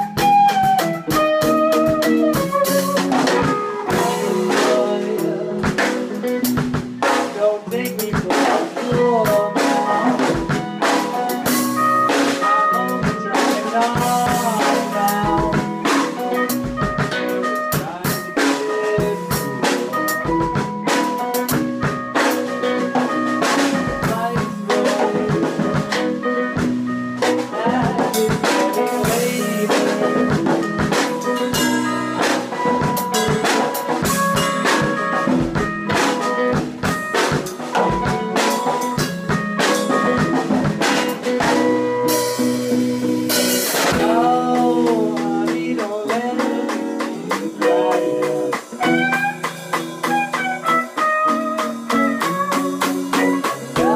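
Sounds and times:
drum kit with cymbal crashes: 0.0s - 53.9s
electric guitars: 0.0s - 53.9s.

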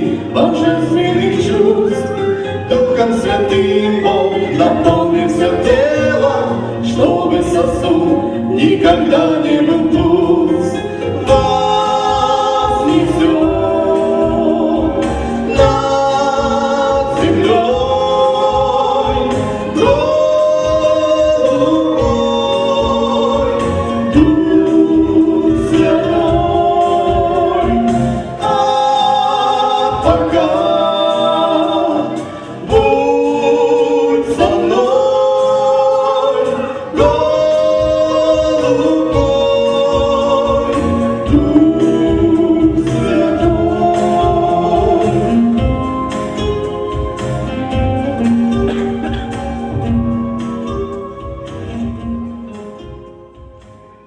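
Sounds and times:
instrumental accompaniment: 0.0s - 54.0s
man and woman singing duet: 0.0s - 54.0s.

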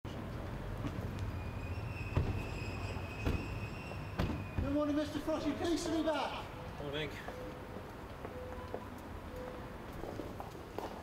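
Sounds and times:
low urban rumble: 0.1s - 11.0s
car doors shutting: 2.1s - 2.6s, 3.2s - 4.8s.

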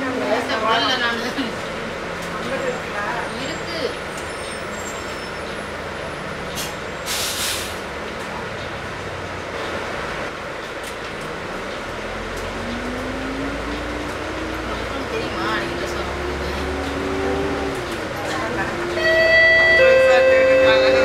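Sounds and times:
bus engine idling: 0.0s - 21.0s
air brakes hissing: 6.6s - 7.8s.

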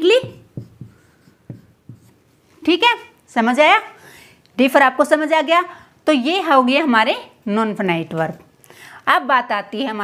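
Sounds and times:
woman speaking: 0.0s - 0.5s, 2.6s - 4.0s, 4.6s - 10.0s
marker writing on whiteboard: 0.0s - 2.4s.

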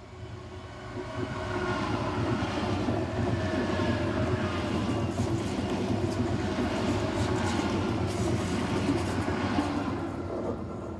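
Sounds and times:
train passing on rails: 0.0s - 10.9s.

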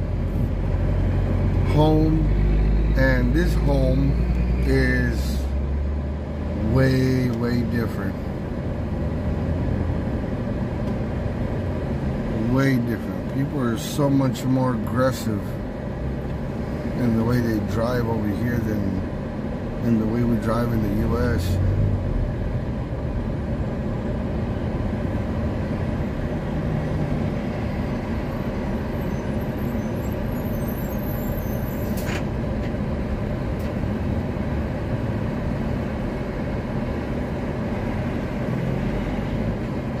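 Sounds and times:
car road and engine noise: 0.0s - 40.0s.

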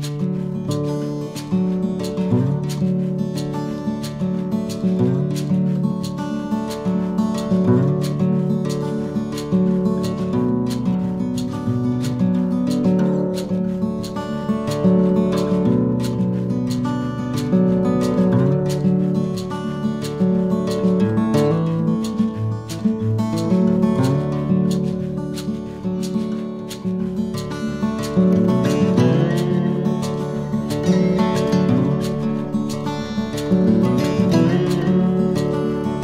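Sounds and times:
acoustic guitar strumming: 0.0s - 36.0s.

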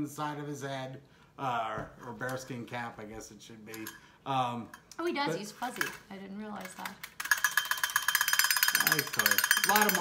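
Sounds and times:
wind-up toy drum taps: 6.6s - 10.0s.

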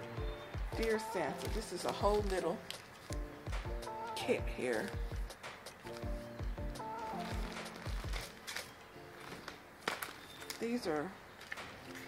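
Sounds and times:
plastic packaging crinkling: 0.7s - 12.0s
sharp plastic crackle: 0.7s - 12.0s.

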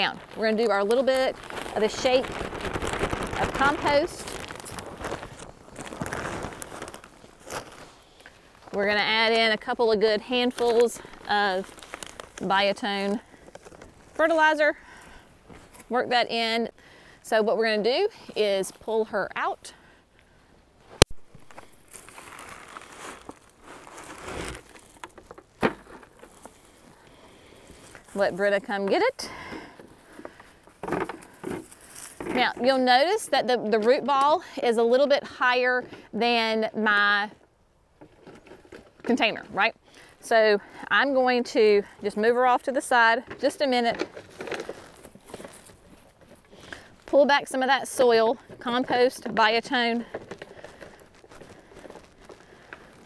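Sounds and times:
plastic pot crinkling and rustling: 0.0s - 16.6s, 20.9s - 37.4s, 38.0s - 53.0s
hands scraping soil: 21.4s - 26.8s.

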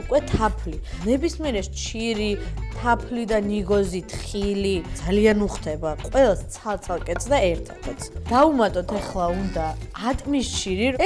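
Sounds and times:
knife cutting on wooden board: 7.0s - 9.9s.

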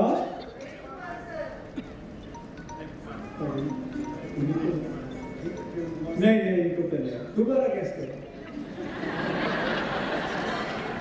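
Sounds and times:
voices talking indistinctly: 0.0s - 8.7s
quiet background music: 0.0s - 11.0s.

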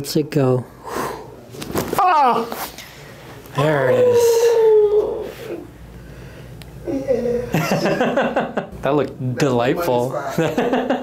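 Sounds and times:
man's drawn-out oooh: 3.8s - 5.6s.

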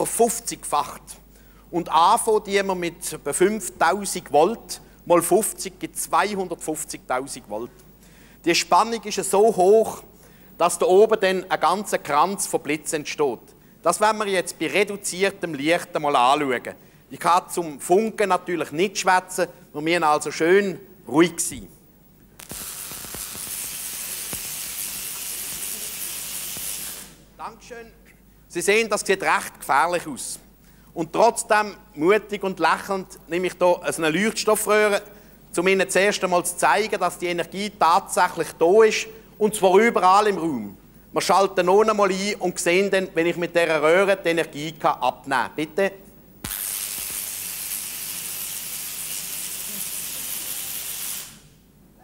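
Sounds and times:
high-voltage sparks hissing and crackling: 22.4s - 27.3s, 46.4s - 51.6s
sharp spark snaps: 22.4s - 27.3s, 46.4s - 51.6s.

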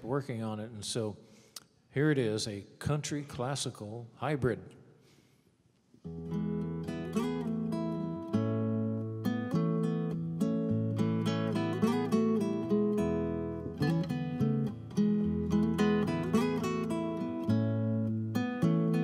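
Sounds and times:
country tune on classical guitar: 6.0s - 19.0s.

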